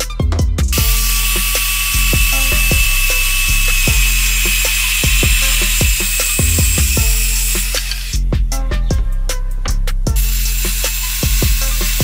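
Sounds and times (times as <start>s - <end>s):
background music with steady beat: 0.0s - 12.0s
circular saw cutting wood: 0.7s - 8.3s, 10.2s - 12.0s.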